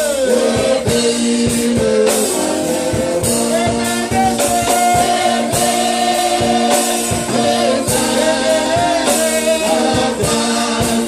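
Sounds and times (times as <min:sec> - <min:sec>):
drum kit strokes: 0:00.0 - 0:11.0
voices singing gospel song: 0:00.0 - 0:11.0.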